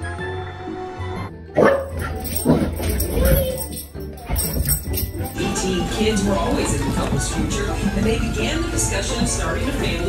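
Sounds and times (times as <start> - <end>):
background music: 0.0 - 10.0
dog barking loudly: 1.6 - 2.7.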